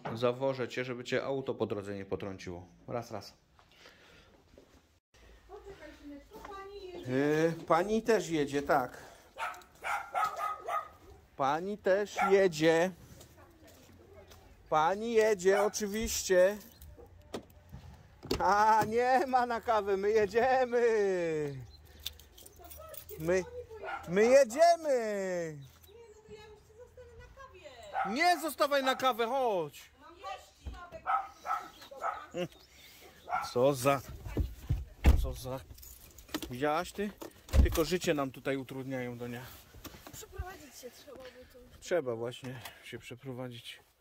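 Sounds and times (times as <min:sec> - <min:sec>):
dog yipping: 0:09.4 - 0:11.3, 0:12.1 - 0:12.5, 0:15.5 - 0:15.8, 0:23.7 - 0:24.2, 0:27.8 - 0:28.2, 0:30.2 - 0:32.4, 0:33.2 - 0:33.6.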